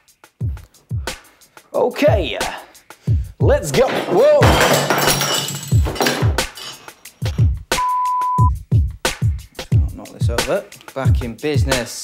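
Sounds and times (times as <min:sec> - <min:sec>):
background music beat: 0:00.0 - 0:12.0
metal tins clattering on wood: 0:03.8 - 0:07.0.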